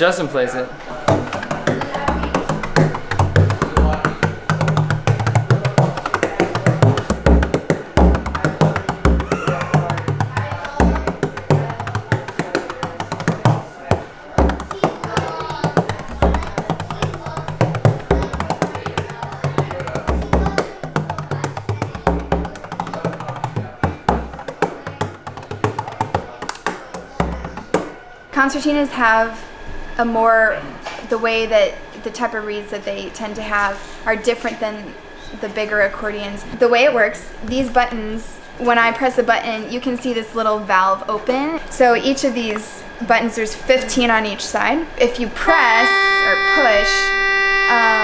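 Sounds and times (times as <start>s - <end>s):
frame drum rolling rhythm: 0.9s - 28.0s
deep drum thumps: 1.0s - 28.0s.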